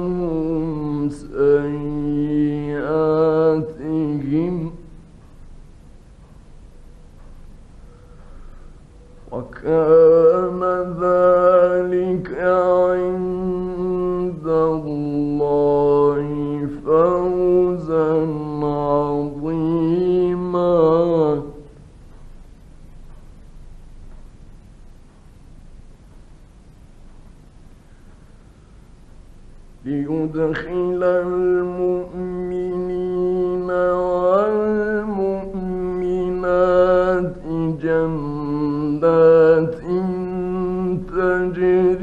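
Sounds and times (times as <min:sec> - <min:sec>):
man reciting melodically: 0:00.0 - 0:05.1, 0:09.2 - 0:21.9, 0:29.7 - 0:42.0
faint recording hiss: 0:00.0 - 0:42.0.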